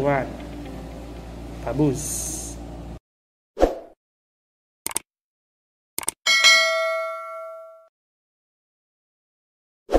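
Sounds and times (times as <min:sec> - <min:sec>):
bright bell ding: 0:06.3 - 0:07.9.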